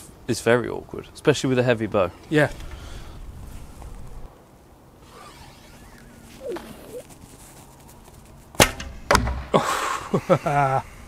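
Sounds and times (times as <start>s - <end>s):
quiet outdoor background: 0.0s - 11.0s
arrow hitting wooden target: 8.6s - 9.5s.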